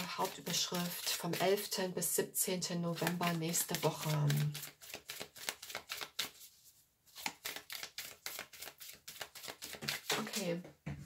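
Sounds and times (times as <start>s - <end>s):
cards being shuffled by hand: 0.0s - 1.7s, 2.9s - 10.6s.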